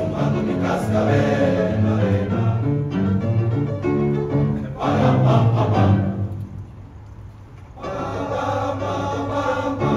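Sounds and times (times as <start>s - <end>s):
choir of young men singing: 0.0s - 2.8s, 4.6s - 6.3s, 7.8s - 9.9s.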